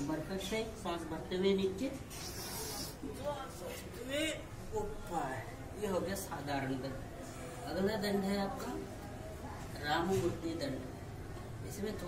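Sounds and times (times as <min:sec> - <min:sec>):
sharp hissing breath: 0:02.1 - 0:03.0.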